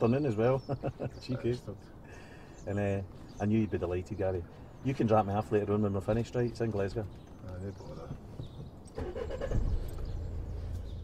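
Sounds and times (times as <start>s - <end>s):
car engine starting and idling: 8.9s - 11.0s.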